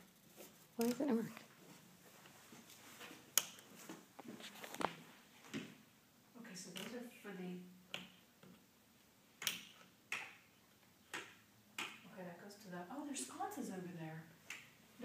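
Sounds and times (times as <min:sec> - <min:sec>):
wall switch clicking: 0:09.4 - 0:10.4.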